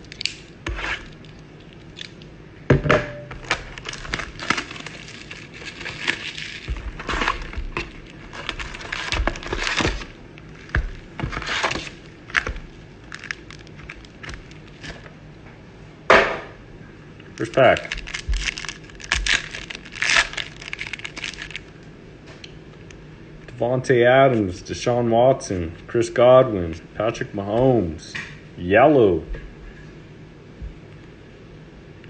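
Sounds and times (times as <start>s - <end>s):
foil packs handled: 3.4s - 15.0s, 17.4s - 21.7s
plastic shrink-wrap crinkling: 3.4s - 15.1s, 17.4s - 21.7s.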